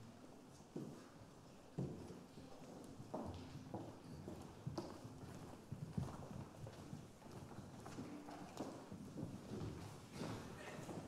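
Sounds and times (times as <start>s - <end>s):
footsteps on wooden stage: 2.8s - 11.0s.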